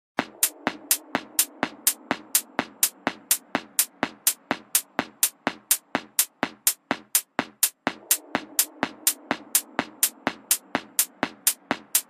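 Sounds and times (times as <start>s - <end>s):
drum machine hits on a steady beat: 0.2s - 12.0s.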